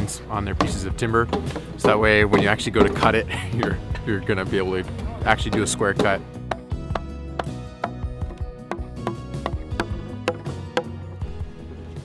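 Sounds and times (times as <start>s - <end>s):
background music: 0.0s - 12.0s
mallets knocking on chisels: 0.5s - 11.1s.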